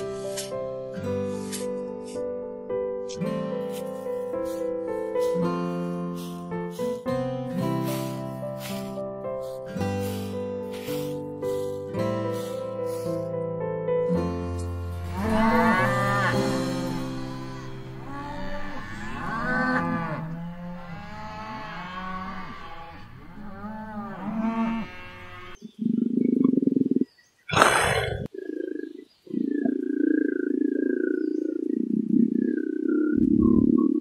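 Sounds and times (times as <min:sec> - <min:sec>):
cattle mooing: 0:15.0 - 0:25.6.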